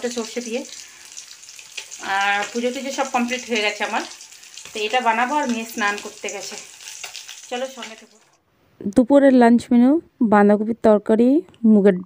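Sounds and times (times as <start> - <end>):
food sizzling in a frying pan: 0.0 - 8.4.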